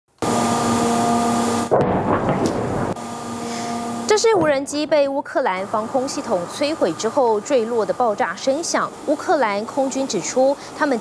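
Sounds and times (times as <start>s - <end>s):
droning hum: 0.2s - 11.0s
loud explosion with rumbling tail: 1.7s - 3.0s.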